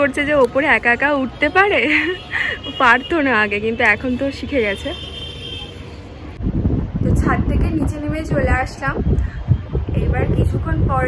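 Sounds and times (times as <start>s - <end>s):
wind buffeting microphone: 6.3s - 11.0s.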